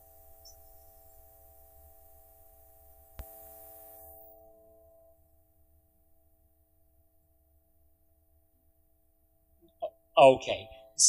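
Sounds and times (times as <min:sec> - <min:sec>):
electrical hum and hiss: 0:00.0 - 0:04.6
sharp click: 0:03.2 - 0:03.6.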